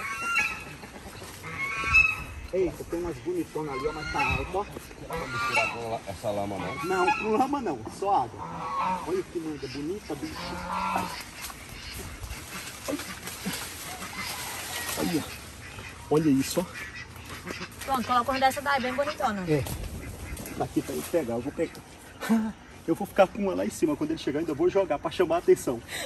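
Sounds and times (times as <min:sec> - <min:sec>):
poultry calling: 0:00.0 - 0:26.0.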